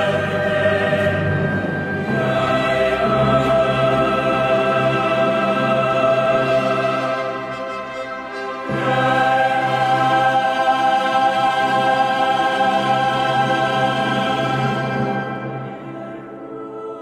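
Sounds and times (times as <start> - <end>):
choir and orchestra chord: 0.0 - 17.0.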